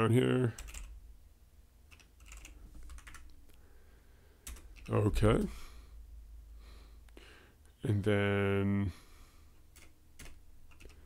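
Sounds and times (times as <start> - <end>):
faint keyboard typing: 0.5 - 1.0, 1.9 - 3.6, 4.4 - 5.1, 9.7 - 11.0.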